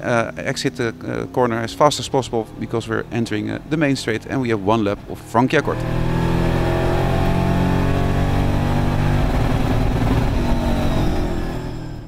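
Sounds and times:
race car engine under load: 0:00.0 - 0:12.0.

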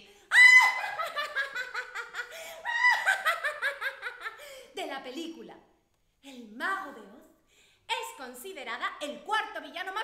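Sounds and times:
woman cackling: 0:00.3 - 0:04.4.

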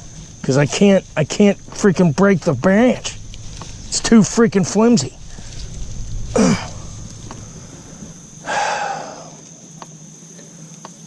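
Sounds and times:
breathy exhale: 0:05.2 - 0:09.4
man grunting: 0:06.4 - 0:06.8.

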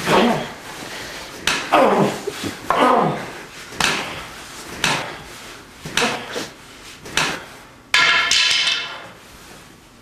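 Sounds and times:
wooden stick knocking: 0:07.1 - 0:09.0
stick clattering on floor: 0:07.1 - 0:09.2.

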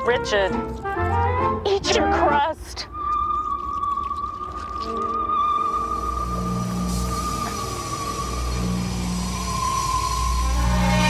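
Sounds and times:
low droning suspense music: 0:00.0 - 0:11.0
high-pitched whine: 0:02.9 - 0:11.0.

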